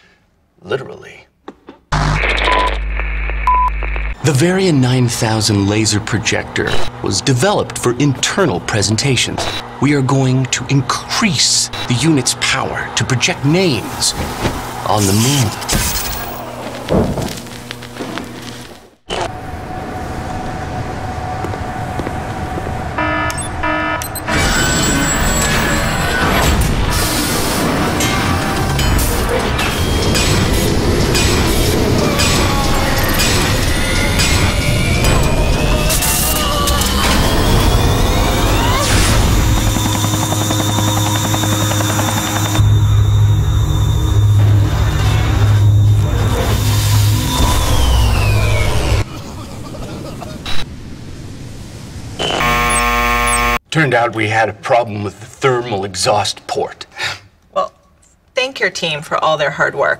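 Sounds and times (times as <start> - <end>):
rising machine whine: 1.9 - 4.3, 14.6 - 49.1, 52.2 - 53.6
deep machine hum and rumble: 28.4 - 49.1.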